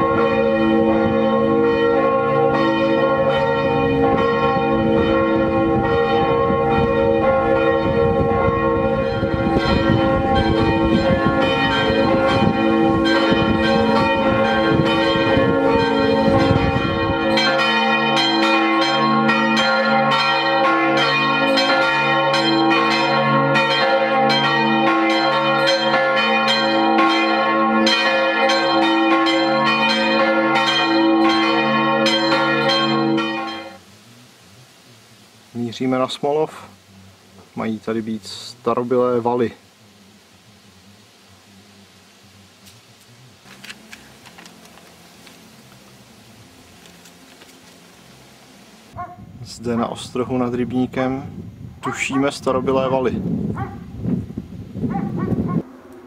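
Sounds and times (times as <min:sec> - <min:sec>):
large church bells ringing: 0:00.0 - 0:33.8.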